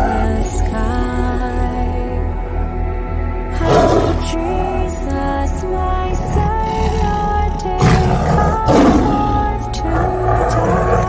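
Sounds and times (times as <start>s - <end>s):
music of long held tones: 0.0s - 11.0s
lion roaring: 3.7s - 4.2s, 6.2s - 11.0s.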